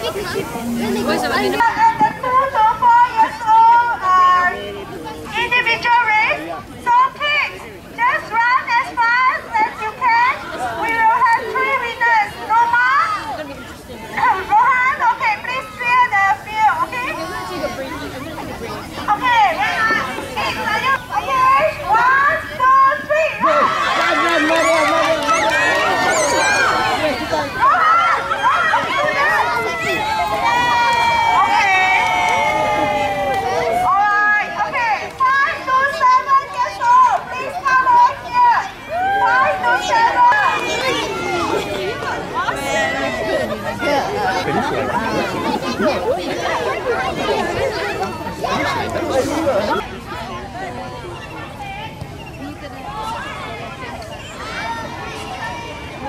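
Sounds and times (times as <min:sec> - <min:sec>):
young children talking and calling out: 0:00.0 - 0:56.0.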